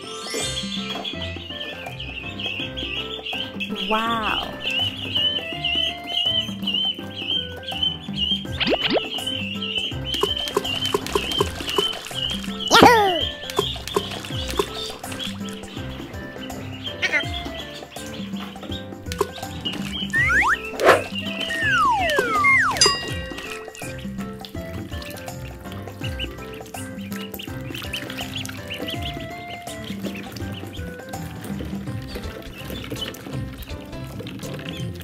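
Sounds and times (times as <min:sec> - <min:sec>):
background music bright melody: 0:00.0 - 0:35.0
whistle-like glide: 0:13.3 - 0:25.6.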